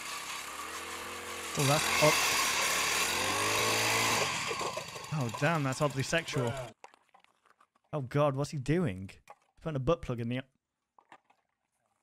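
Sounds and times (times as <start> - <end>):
ice auger engine buzzing: 0.0 - 6.8.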